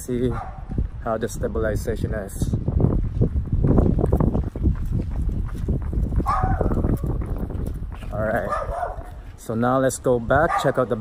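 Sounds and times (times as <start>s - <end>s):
running footfalls on pavement: 2.5s - 10.2s.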